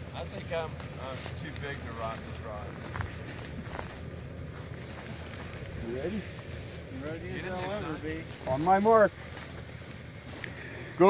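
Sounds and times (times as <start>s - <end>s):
outdoor background rumble: 0.0s - 11.0s.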